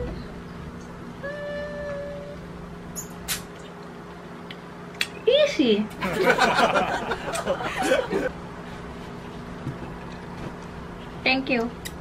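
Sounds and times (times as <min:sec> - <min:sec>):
person humming: 0:01.2 - 0:02.4.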